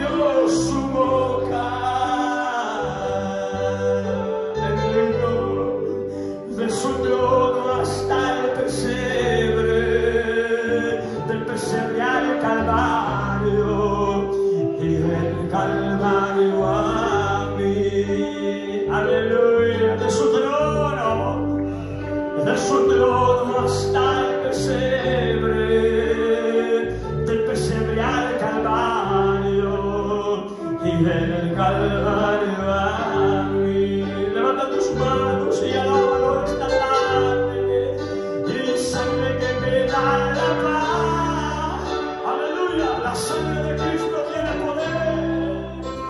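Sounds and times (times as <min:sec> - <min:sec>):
keyboard: 0:00.0 - 0:46.0
low bass notes: 0:00.0 - 0:46.0
man singing into microphone: 0:00.0 - 0:46.0
worship band playing: 0:00.0 - 0:46.0.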